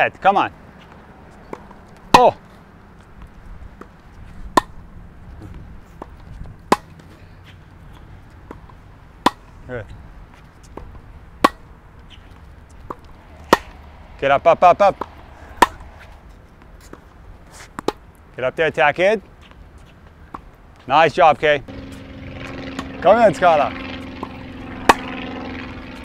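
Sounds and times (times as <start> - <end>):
tennis ball bouncing: 0.6 - 18.3, 19.2 - 20.9, 21.7 - 26.0
tennis ball struck by racquets: 0.9 - 2.4, 3.8 - 4.8, 5.4 - 7.6, 8.4 - 9.6, 10.7 - 18.1, 21.7 - 26.0.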